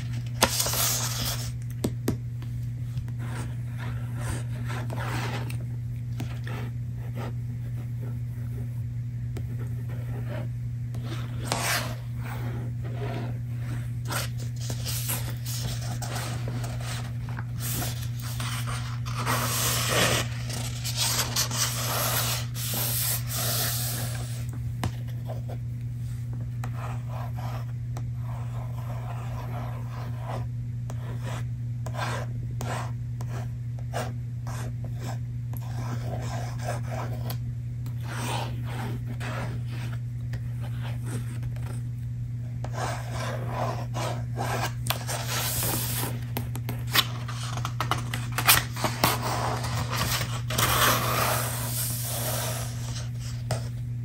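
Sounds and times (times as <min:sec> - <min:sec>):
hands rubbing book paper: 0:11.2 - 0:24.4, 0:43.4 - 0:53.6.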